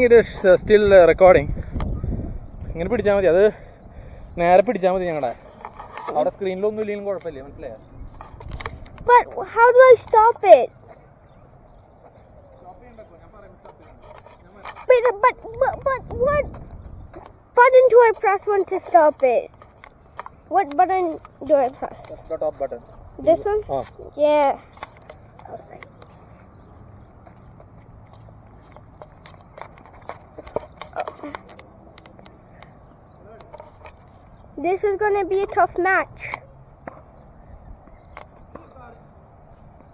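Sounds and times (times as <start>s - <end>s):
faint distant voices: 0.0s - 39.9s.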